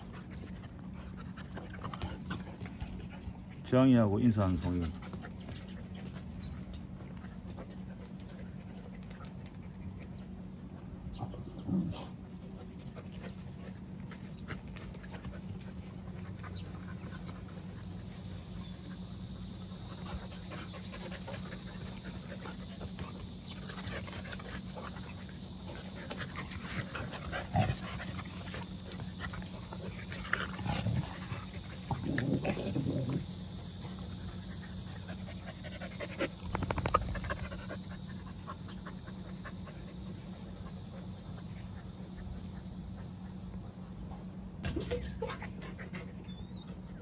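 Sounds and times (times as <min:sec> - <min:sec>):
dogs panting and scuffling: 0:00.0 - 0:47.0.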